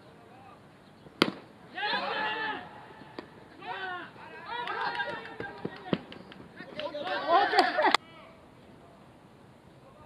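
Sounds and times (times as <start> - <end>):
baseball bat hitting ball: 1.2 - 2.0, 3.1 - 3.4, 4.7 - 6.9
players shouting: 1.7 - 8.4.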